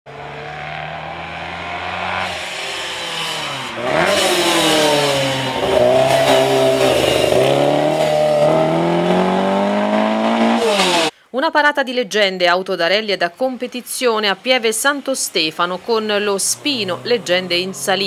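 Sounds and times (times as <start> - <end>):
rally car engine revving: 0.1 - 11.1, 16.2 - 18.0.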